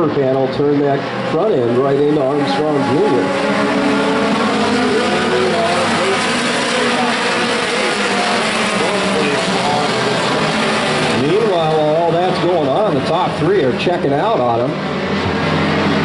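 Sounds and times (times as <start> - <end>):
engine and tyre noise: 0.0 - 16.0
race car engines passing: 0.0 - 16.0.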